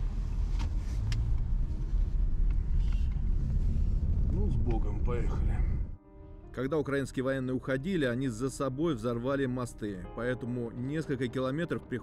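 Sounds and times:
car engine rumble from inside: 0:00.0 - 0:06.0.

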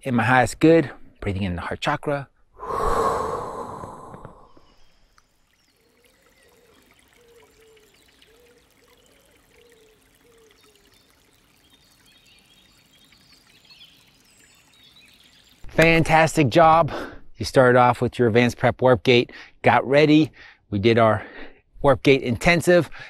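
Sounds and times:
man breathing deeply: 0:02.6 - 0:04.7.

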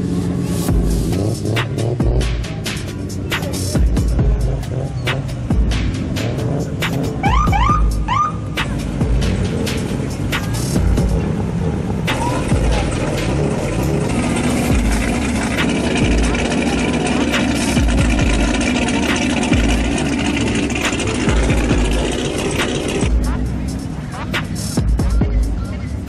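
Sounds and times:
sports cars driving past slowly: 0:00.0 - 0:26.0
music with deep thumps: 0:00.6 - 0:26.0.

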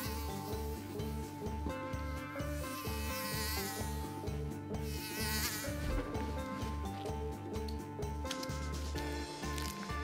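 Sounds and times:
housefly buzzing: 0:00.0 - 0:00.7, 0:02.2 - 0:06.8
background music with bass line: 0:00.0 - 0:10.0.

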